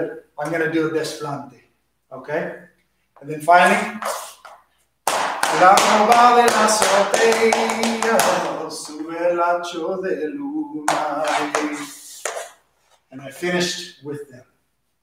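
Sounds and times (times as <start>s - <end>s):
man talking: 0.0s - 4.4s, 10.9s - 12.4s, 13.1s - 14.5s
dance shoes tapping wooden floor: 4.0s - 9.1s, 10.9s - 12.6s.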